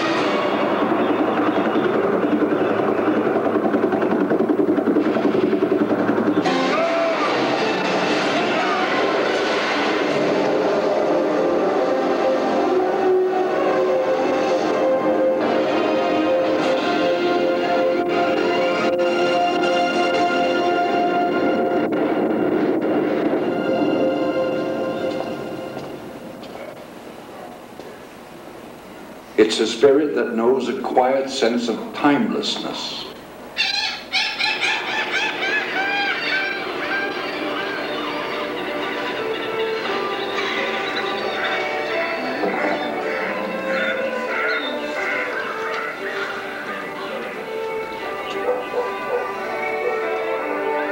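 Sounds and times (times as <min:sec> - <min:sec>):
seagulls calling: 0:00.0 - 0:09.7, 0:33.5 - 0:50.9
orchestral music: 0:00.0 - 0:26.5, 0:35.3 - 0:50.9
steady rushing roar: 0:00.0 - 0:27.3, 0:33.2 - 0:50.9.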